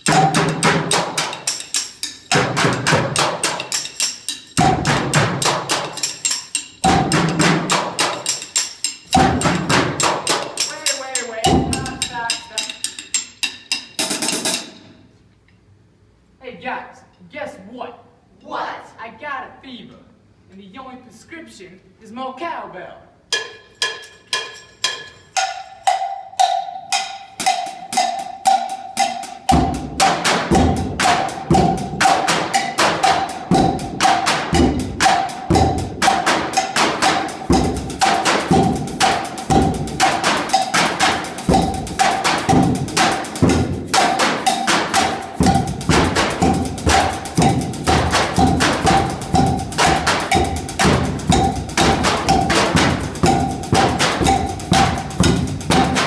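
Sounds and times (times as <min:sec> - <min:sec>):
cowbell-like ringing beat: 0:00.0 - 0:14.8, 0:23.3 - 0:56.0.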